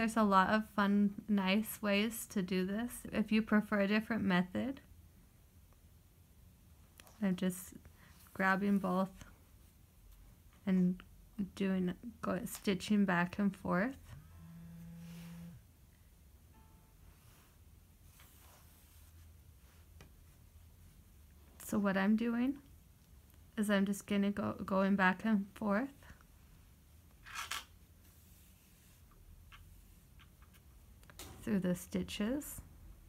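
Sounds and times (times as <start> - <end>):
yarn rustling through stitches: 6.9 - 10.8, 17.2 - 23.6, 27.1 - 30.9.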